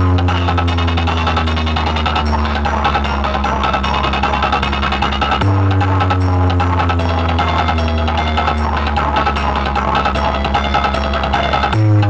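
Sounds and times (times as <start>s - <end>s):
deep held bass note: 0.0s - 12.0s
fast ticking beat: 0.0s - 12.0s
loud dj remix music: 0.0s - 12.0s.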